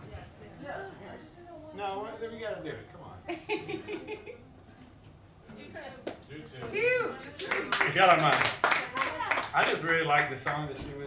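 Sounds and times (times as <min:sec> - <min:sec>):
audience applauding: 0:07.4 - 0:10.7.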